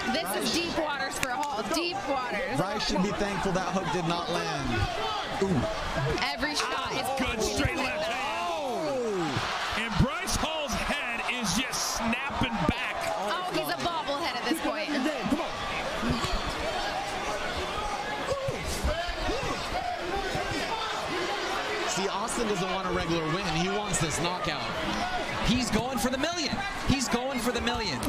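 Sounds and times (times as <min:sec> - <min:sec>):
crowd shouting and whooping: 0:00.0 - 0:28.0.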